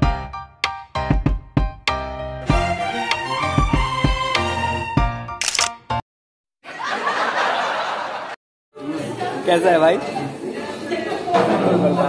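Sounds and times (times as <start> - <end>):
background music: 0.0 - 6.0
sharp click sound effect: 5.4 - 5.8.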